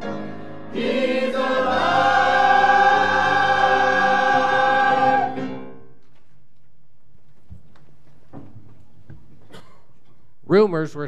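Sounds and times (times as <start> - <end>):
church choir singing: 0.7 - 5.8.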